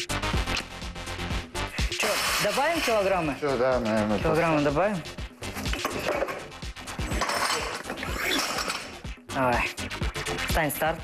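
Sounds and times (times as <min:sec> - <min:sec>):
background music: 0:00.0 - 0:11.0
metal clinks and knocks: 0:07.0 - 0:09.0.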